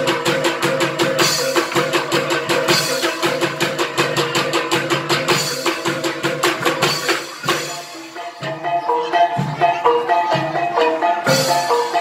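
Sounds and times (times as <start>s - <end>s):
fast drums and percussion: 0.0s - 12.0s.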